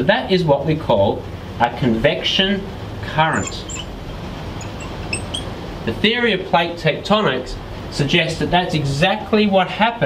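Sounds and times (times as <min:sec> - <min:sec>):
low background noise: 0:00.0 - 0:10.0
marker squeaking on glass: 0:03.2 - 0:05.6.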